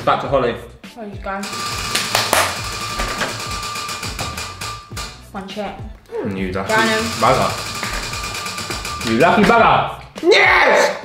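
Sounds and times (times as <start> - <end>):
background music with drum beat: 0.0 - 11.0
prize wheel ticking: 1.4 - 5.2, 6.7 - 9.4.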